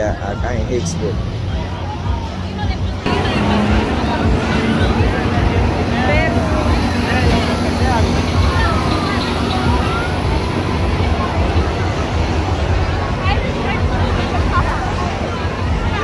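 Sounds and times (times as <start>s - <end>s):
crowd voices and calls: 0.0s - 16.0s.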